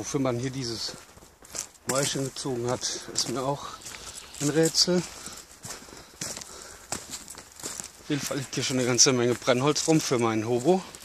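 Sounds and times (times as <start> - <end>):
footsteps on leaves: 0.0 - 11.0.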